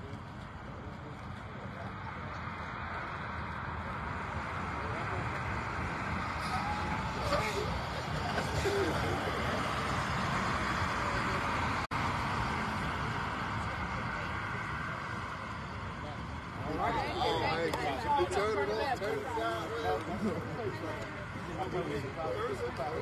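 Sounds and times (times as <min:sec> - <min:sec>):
faint voices talking: 0:00.0 - 0:23.0
outdoor background noise: 0:00.0 - 0:23.0.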